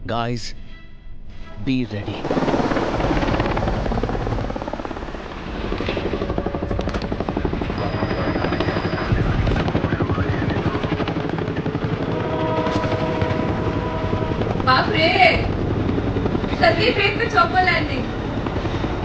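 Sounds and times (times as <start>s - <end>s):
helicopter rotor chopping: 1.7s - 19.0s.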